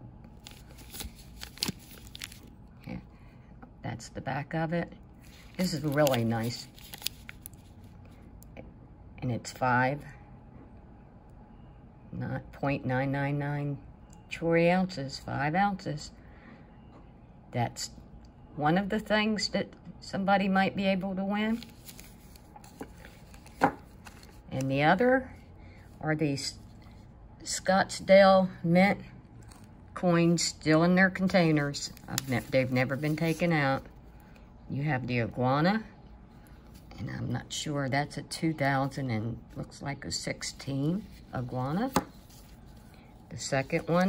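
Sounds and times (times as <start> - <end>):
plastic sleeve crinkling: 0.4 - 2.5, 5.2 - 7.9, 21.6 - 24.6, 31.6 - 34.0.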